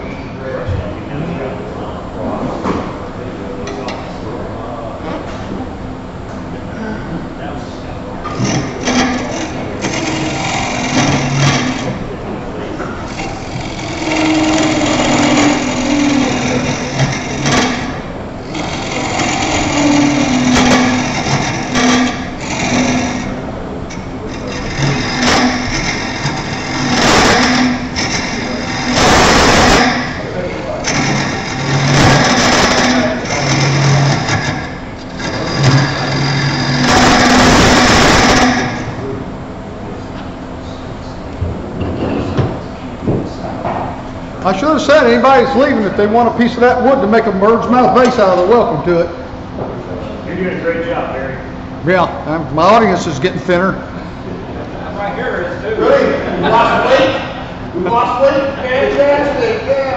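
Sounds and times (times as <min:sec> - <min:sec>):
lathe motor hum: 0:08.0 - 0:40.0
turning tool cutting wood: 0:08.2 - 0:12.1, 0:13.0 - 0:39.0.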